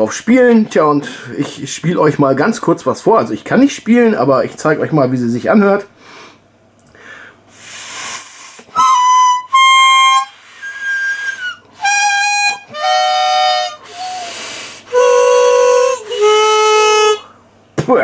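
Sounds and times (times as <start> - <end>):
harmonica notes: 7.5 - 17.4.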